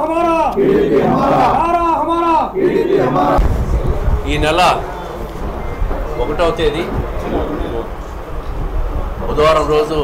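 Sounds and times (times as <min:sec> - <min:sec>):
men shouting a slogan in unison: 0:00.0 - 0:03.4.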